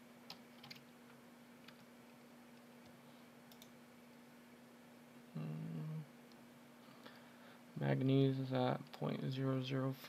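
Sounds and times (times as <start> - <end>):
faint steady hum: 0.0 - 10.0
computer mouse clicks: 3.5 - 3.7.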